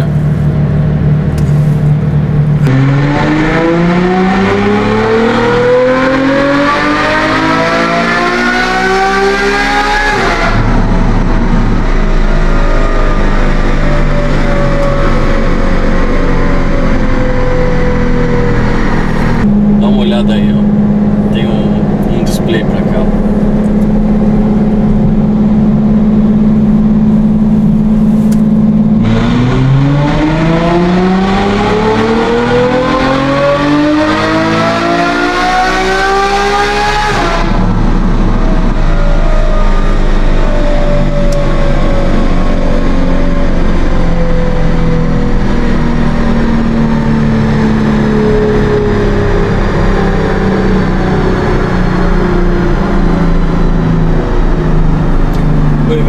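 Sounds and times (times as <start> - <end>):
car engine revving on dynamometer: 2.2 - 56.0.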